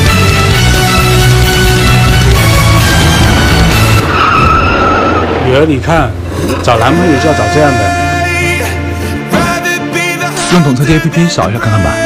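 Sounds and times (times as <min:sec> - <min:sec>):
background music: 0:00.0 - 0:12.0
car tyres squealing: 0:02.6 - 0:07.2.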